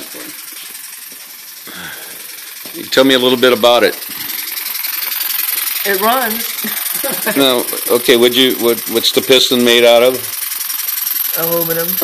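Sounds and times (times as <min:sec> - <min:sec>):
air engine ticking clatter: 0:00.0 - 0:12.0.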